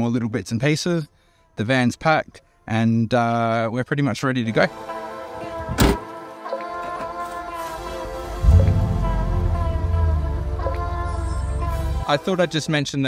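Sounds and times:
sustained music chords: 0:08.2 - 0:12.1
deep bass: 0:08.4 - 0:12.1.

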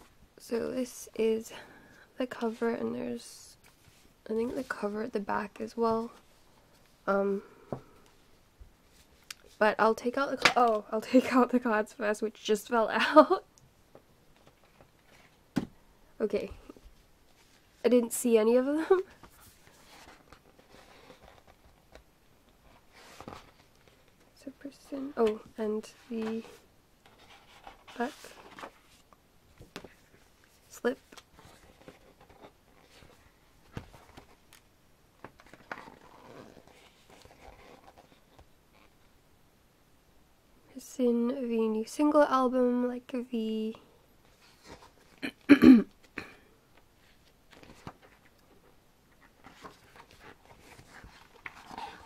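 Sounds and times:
pages being turned: 0:26.2 - 0:34.6, 0:35.2 - 0:39.0, 0:47.1 - 0:48.5, 0:49.2 - 0:52.0
woman clearing her throat: 0:45.2 - 0:46.4.

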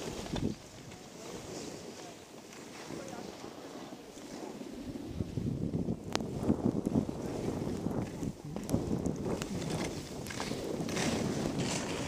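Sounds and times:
skis sliding over snow: 0:00.0 - 0:12.0
wind on microphone: 0:00.0 - 0:12.0.

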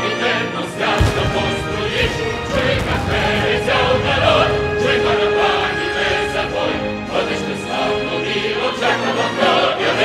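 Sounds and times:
choir singing: 0:00.0 - 0:10.0
orchestral accompaniment: 0:00.8 - 0:09.3.

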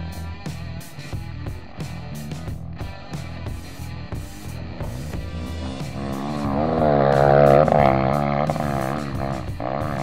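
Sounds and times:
background music: 0:00.0 - 0:10.0
dirt bike engine revving: 0:01.9 - 0:10.0.

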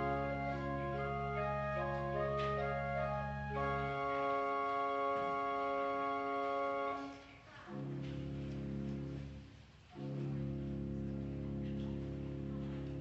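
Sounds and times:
church organ chords: 0:00.0 - 0:07.1, 0:07.7 - 0:13.0.

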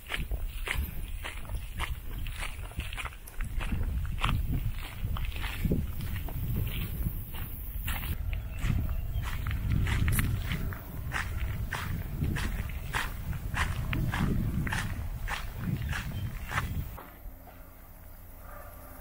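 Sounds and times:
footsteps on gravel: 0:00.0 - 0:17.2
low rumble: 0:00.4 - 0:19.0.

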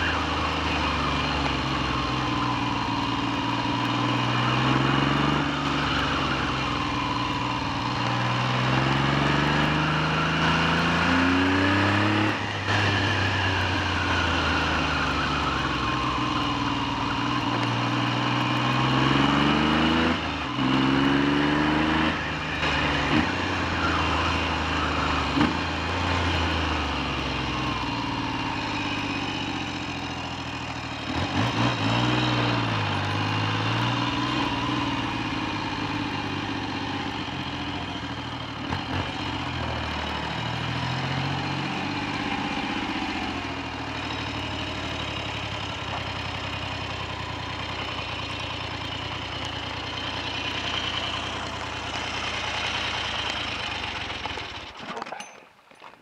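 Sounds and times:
motorcycle engine revving and idling: 0:00.0 - 0:55.0.

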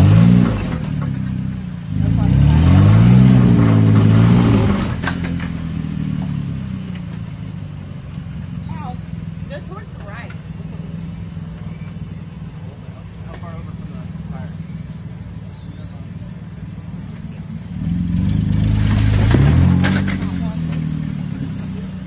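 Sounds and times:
off-road vehicle engine revving: 0:00.0 - 0:22.0.

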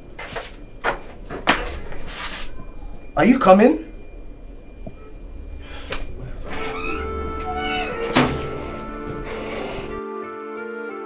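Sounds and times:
door handle and latch clicking: 0:06.5 - 0:08.8.

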